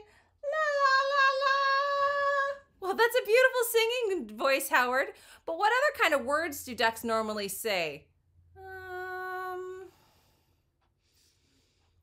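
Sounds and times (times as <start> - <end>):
high-pitched voice humming: 8.6 - 9.9.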